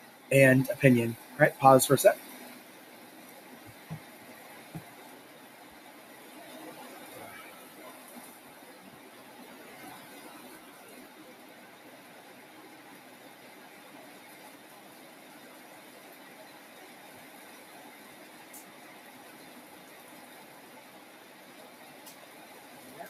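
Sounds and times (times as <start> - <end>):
faint hiss: 0.0 - 2.7.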